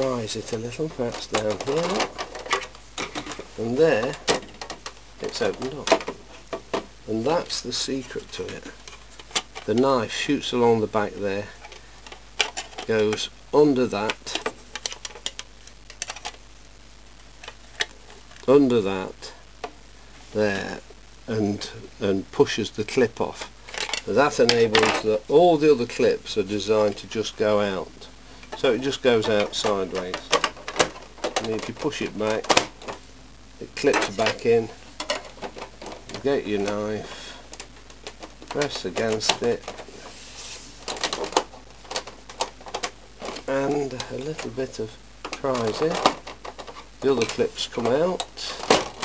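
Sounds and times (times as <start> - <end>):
soft rustle of handling: 0.0 - 13.3, 13.9 - 49.0.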